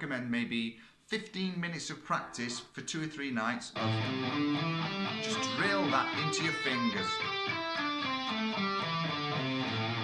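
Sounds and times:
electric guitar single notes: 3.8 - 10.0.

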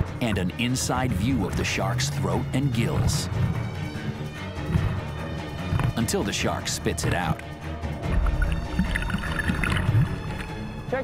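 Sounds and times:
water splashing and bubbling: 7.8 - 10.8
short water gurgles: 8.0 - 10.6.

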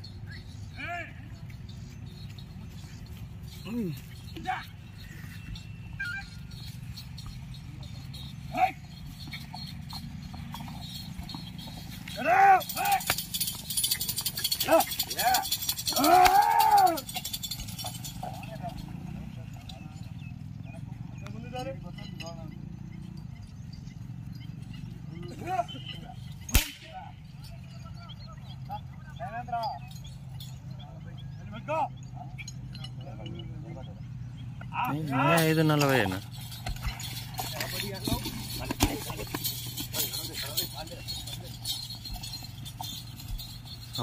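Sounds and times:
faint men calling: 0.0 - 44.0
knocks and thumps of hooves: 1.4 - 28.0, 34.5 - 44.0
men shouting: 2.6 - 9.4, 12.0 - 19.3, 25.1 - 30.0, 34.6 - 36.9.

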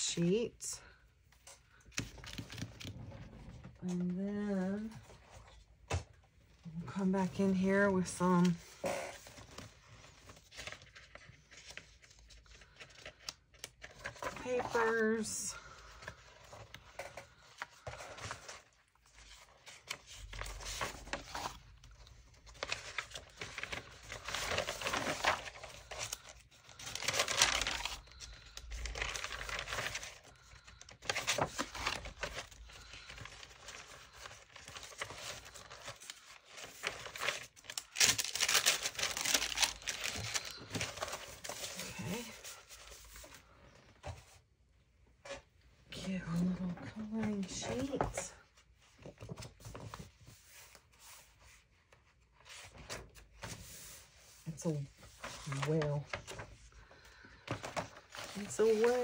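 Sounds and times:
paper rustling: 1.4 - 3.6, 7.1 - 44.4, 46.4 - 59.0.

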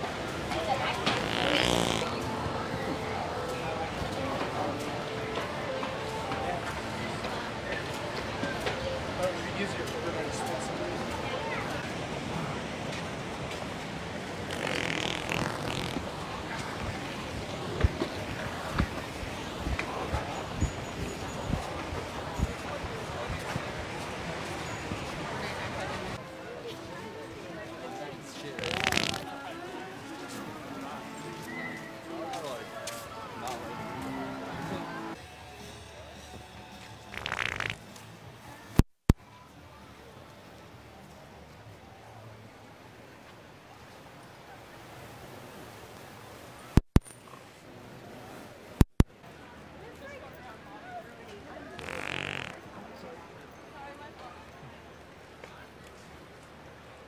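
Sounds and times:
people talking: 0.0 - 36.9, 49.3 - 57.0
people chattering: 0.0 - 57.0
background music: 29.3 - 37.2.

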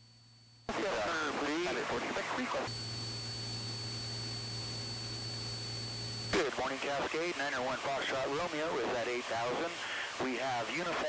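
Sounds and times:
muffled talk over radio: 0.7 - 2.7, 6.3 - 11.0
radio hiss: 0.7 - 3.5, 5.9 - 11.0
low hum: 2.7 - 6.4.

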